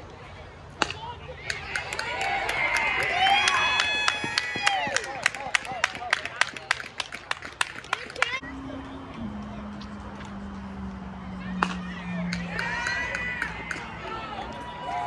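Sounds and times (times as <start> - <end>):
baseball bat hitting ball: 0.8 - 1.1, 11.6 - 13.9
spectators shouting and cheering: 0.8 - 7.1, 7.9 - 15.0.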